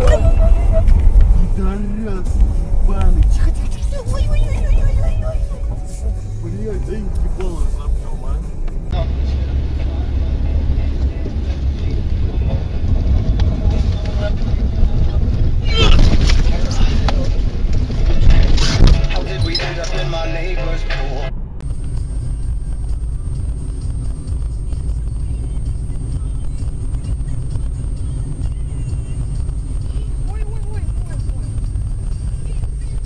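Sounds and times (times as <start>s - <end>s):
people's voices: 0.0s - 21.3s
vehicle driving rumble: 0.0s - 33.0s.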